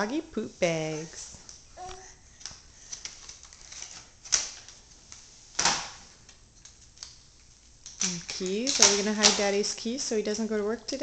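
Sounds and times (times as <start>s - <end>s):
keys rattling on tile floor: 8.2s - 9.3s.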